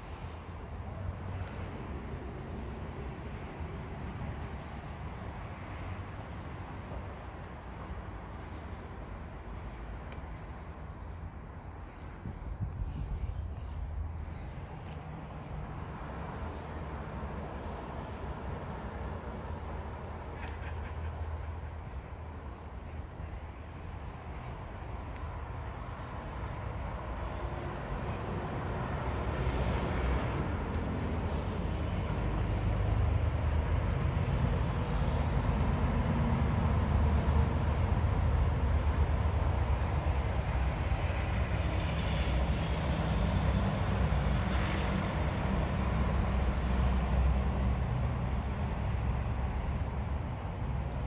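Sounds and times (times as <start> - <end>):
vehicle engine rumbling: 0.0 - 51.0.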